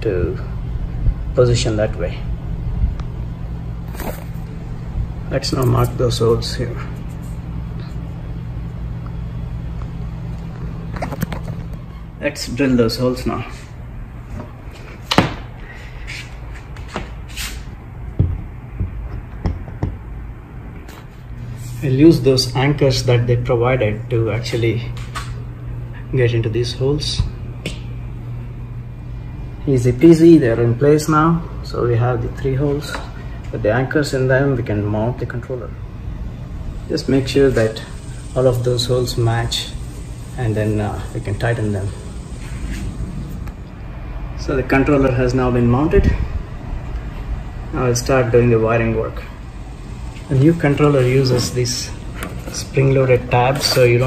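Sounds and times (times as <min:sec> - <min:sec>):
low steady rumble: 0:00.0 - 0:15.0, 0:17.7 - 0:54.0.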